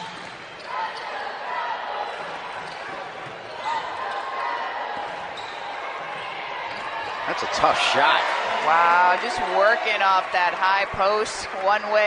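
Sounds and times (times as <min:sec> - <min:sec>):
arena background noise: 0:00.0 - 0:12.0.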